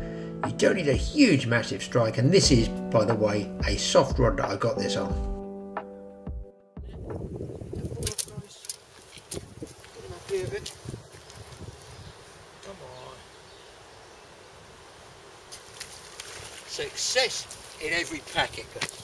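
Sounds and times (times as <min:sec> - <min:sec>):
fishing rod and net rustling: 0:07.6 - 0:12.4, 0:15.4 - 0:19.0
faint steady hiss: 0:07.8 - 0:19.0.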